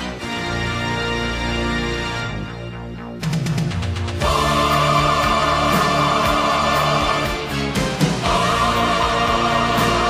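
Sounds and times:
choir singing held notes: 4.2 - 10.0.

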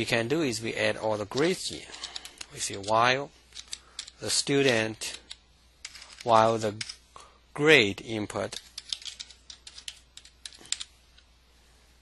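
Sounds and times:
computer keyboard typing: 8.8 - 10.9.

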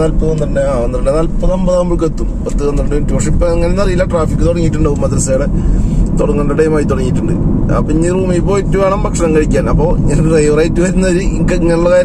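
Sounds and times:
man talking: 0.0 - 5.5, 6.1 - 12.0
car engine and road rumble: 0.0 - 12.0.

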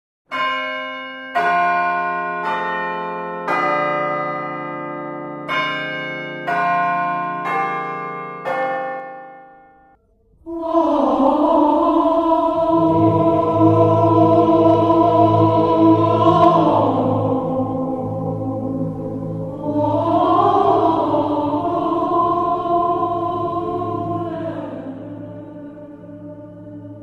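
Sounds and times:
church bells ringing: 0.3 - 10.0, 11.6 - 27.0
choral music: 0.6 - 27.0.

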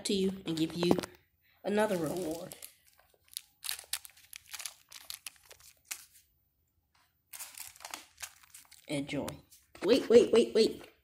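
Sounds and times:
plastic wrappers crinkling: 0.5 - 6.3, 7.3 - 9.0.

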